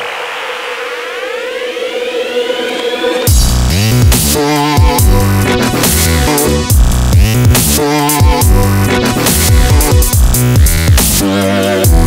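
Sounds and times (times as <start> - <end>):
electronic synth riser: 0.0 - 6.7.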